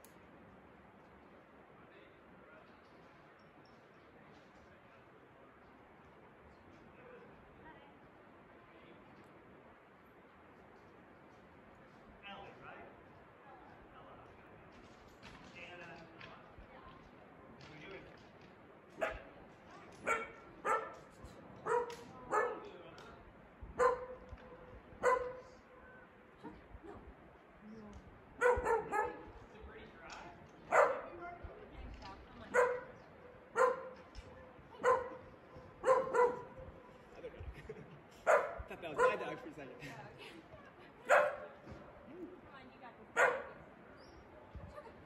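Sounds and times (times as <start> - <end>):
dog barking: 19.0 - 19.3, 20.0 - 22.7, 23.8 - 25.6, 28.4 - 29.4, 30.7 - 31.3, 32.5 - 36.8, 38.2 - 39.3, 41.1 - 41.6, 43.2 - 43.7.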